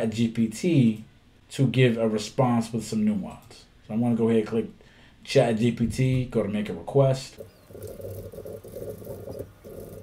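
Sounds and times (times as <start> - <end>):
computer keyboard typing: 7.4 - 10.0.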